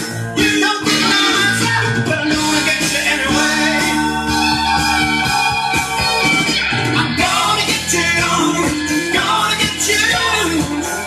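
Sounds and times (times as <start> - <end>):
record music through loudspeakers: 0.0 - 11.0.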